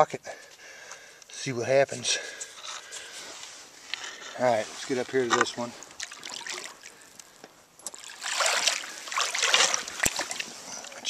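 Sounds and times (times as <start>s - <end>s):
wading through shallow water: 2.4s - 11.0s
water sloshing and splashing: 3.0s - 11.0s.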